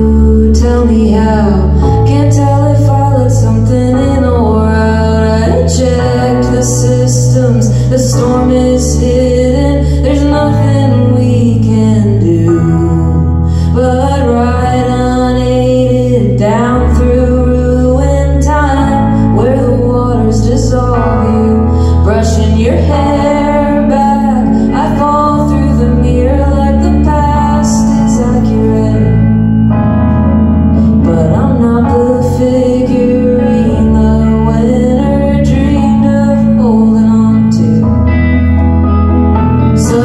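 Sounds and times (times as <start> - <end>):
woman singing: 0.0 - 29.8, 30.7 - 38.6, 39.6 - 40.0
electric guitar: 0.0 - 40.0
keyboard chords: 0.0 - 40.0
low bass notes: 0.0 - 40.0.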